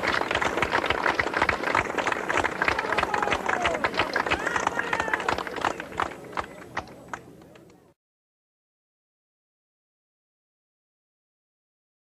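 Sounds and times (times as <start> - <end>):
audience clapping: 0.0 - 7.8
shouts and cheers: 2.7 - 5.4.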